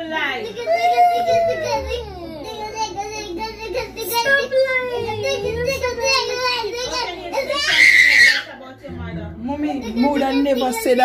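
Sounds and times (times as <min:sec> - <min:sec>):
excited talking: 0:00.0 - 0:11.0.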